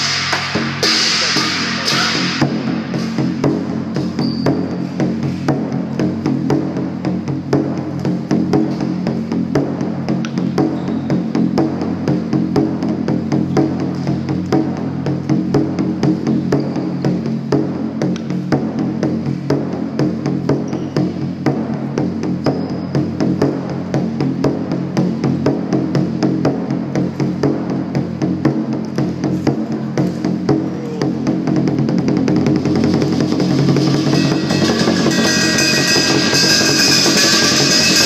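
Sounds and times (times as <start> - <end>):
cymbals clashing: 0.0 - 38.0
drum beating fast: 0.0 - 38.0.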